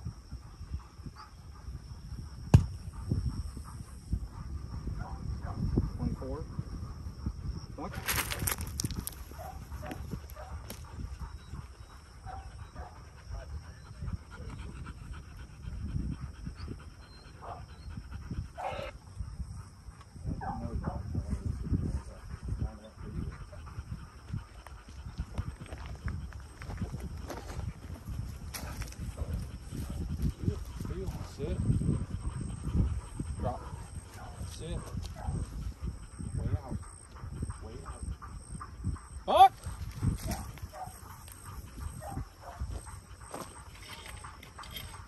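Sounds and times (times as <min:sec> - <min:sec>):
dog panting: 0:00.0 - 0:45.0
wind buffeting microphone: 0:00.0 - 0:45.0.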